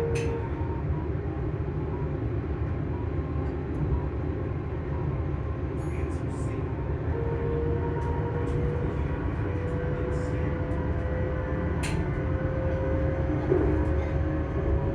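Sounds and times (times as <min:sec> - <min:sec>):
train low rumble: 0:00.0 - 0:14.9.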